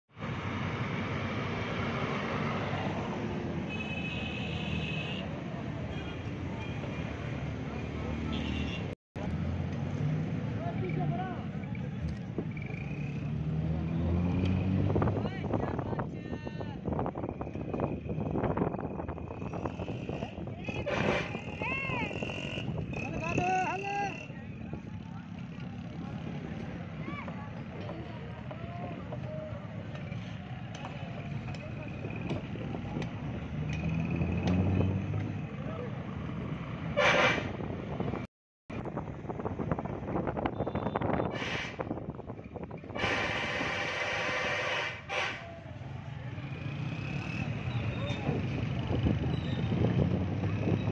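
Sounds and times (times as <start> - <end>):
traffic noise: 0.1 - 50.9
motor rickshaw engines passing: 0.2 - 50.9
vehicle horn toot: 3.7 - 5.3, 8.3 - 9.0, 37.0 - 37.5, 40.5 - 41.8, 43.0 - 45.5
crowd voices: 20.1 - 33.4.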